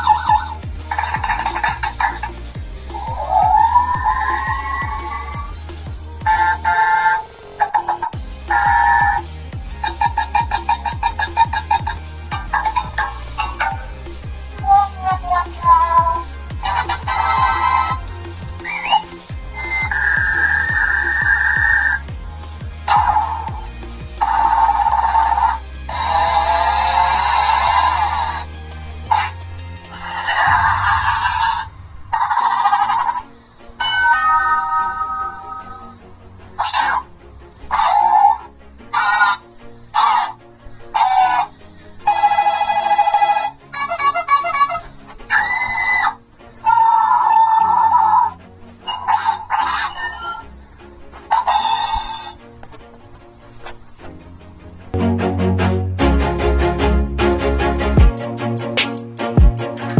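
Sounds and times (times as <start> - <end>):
ringtone-like clip: 0.0 - 5.6, 6.2 - 9.2, 18.6 - 22.1
low humming pulse: 0.0 - 6.7
electronic sound effects: 0.0 - 9.3
rising electronic chirp: 0.0 - 9.3, 18.6 - 22.1
warbling electronic robotic voice: 6.2 - 9.2.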